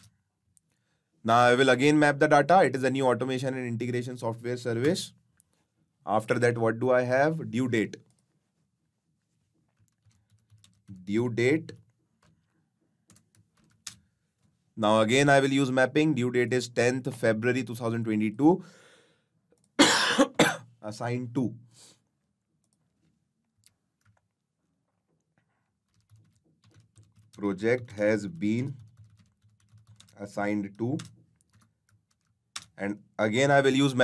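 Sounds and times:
computer keyboard typing: 0:09.7 - 0:11.1, 0:13.0 - 0:14.5, 0:25.8 - 0:32.8.

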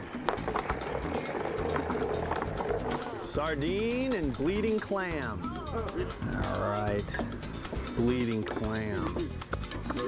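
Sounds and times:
suspense music with held tone: 0:00.0 - 0:10.0
balls clicking on spinning wheel: 0:00.2 - 0:05.4.

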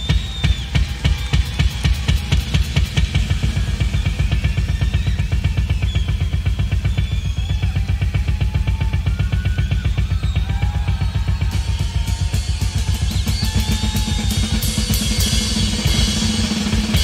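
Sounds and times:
rock drum kit playing: 0:00.0 - 0:17.0.

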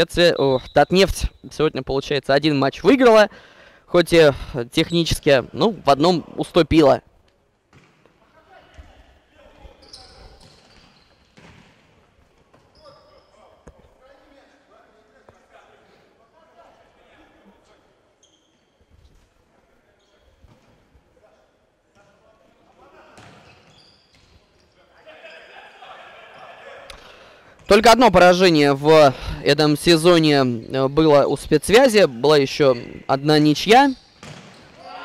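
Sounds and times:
shoe squeaks: 0:00.3 - 0:01.5, 0:09.7 - 0:11.6, 0:12.6 - 0:13.7, 0:18.2 - 0:19.2, 0:19.9 - 0:20.6, 0:23.2 - 0:25.8, 0:32.6 - 0:34.9
ball kicks and bounces: 0:10.4 - 0:11.8, 0:34.2 - 0:34.7.

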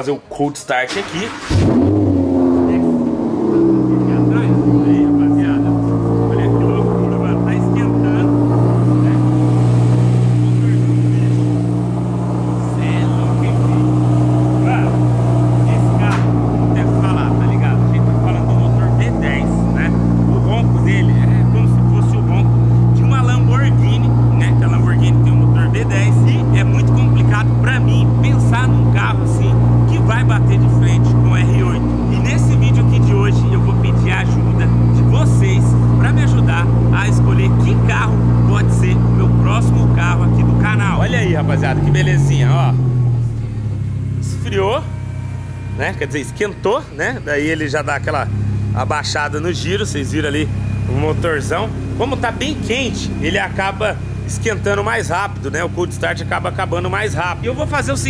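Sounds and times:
engine cold idle after start: 0:00.9 - 0:01.8.

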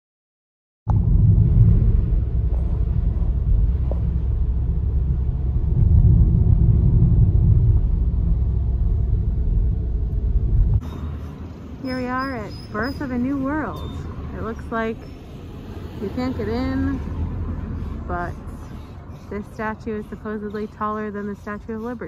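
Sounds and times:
car road and engine rumble: 0:00.9 - 0:22.0
outdoor ambience: 0:00.9 - 0:22.0.

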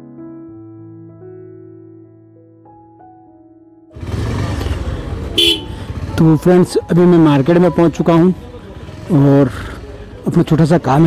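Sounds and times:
motorcycle engine: 0:03.9 - 0:10.3
vehicle horn toot: 0:05.3 - 0:06.0.

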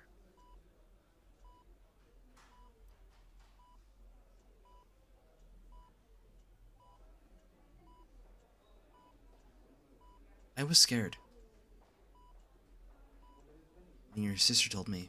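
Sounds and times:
heart monitor beeping: 0:01.4 - 0:01.7, 0:02.4 - 0:06.1, 0:06.8 - 0:07.2, 0:07.8 - 0:10.4, 0:11.0 - 0:12.5, 0:13.2 - 0:13.5.

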